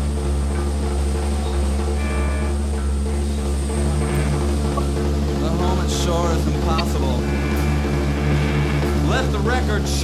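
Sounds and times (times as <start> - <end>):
droning rock guitar and bass: 0.0 - 10.0
low hum: 0.0 - 10.0.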